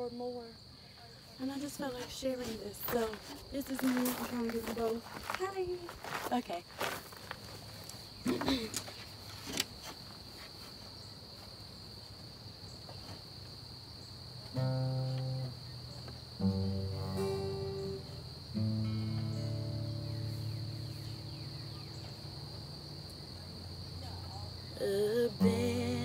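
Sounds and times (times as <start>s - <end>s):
insects chirring: 0.0s - 26.0s
acoustic guitar chords strummed: 14.6s - 26.0s.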